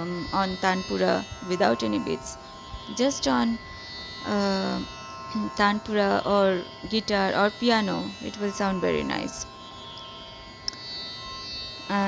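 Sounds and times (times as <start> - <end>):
tanpura drone: 0.0 - 12.0.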